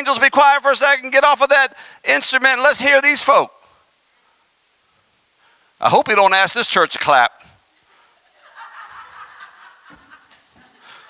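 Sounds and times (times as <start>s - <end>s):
person preaching: 0.0s - 3.6s, 5.8s - 7.5s
soft quiet laughter: 8.2s - 11.0s.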